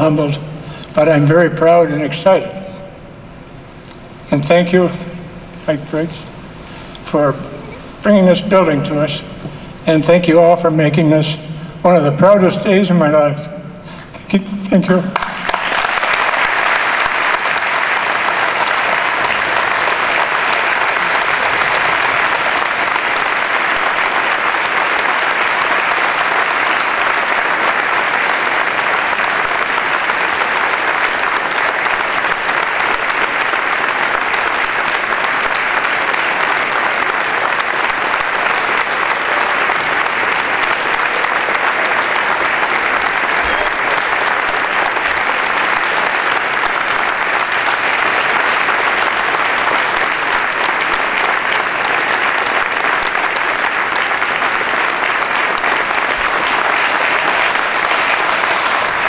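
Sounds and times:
audience applause: 0:15.1 - 0:59.0.

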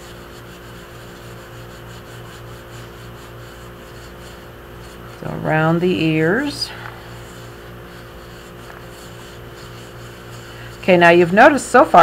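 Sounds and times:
fingertips rubbing porcelain: 0:00.0 - 0:12.0
steady low hum: 0:00.0 - 0:12.0.

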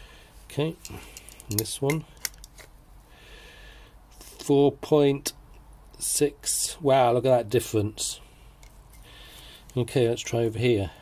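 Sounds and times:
calipers clicking on metal: 0:00.7 - 0:02.7.

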